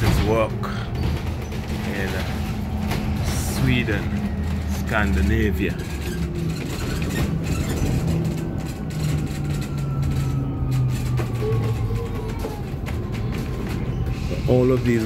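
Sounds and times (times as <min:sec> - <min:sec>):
bus drivetrain and road rumble: 0:00.0 - 0:15.0.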